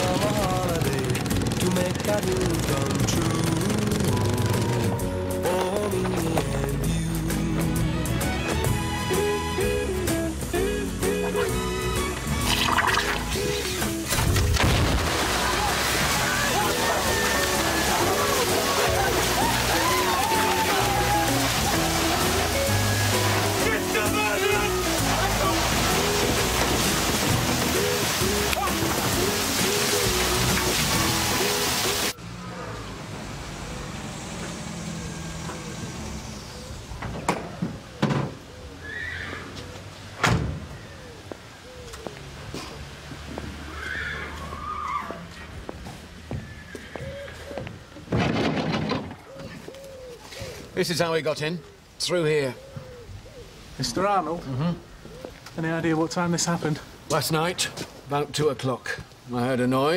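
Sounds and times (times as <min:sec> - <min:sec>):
pop song with singing: 0:00.0 - 0:14.1, 0:27.4 - 0:31.6
shower spraying and splashing: 0:12.4 - 0:32.2.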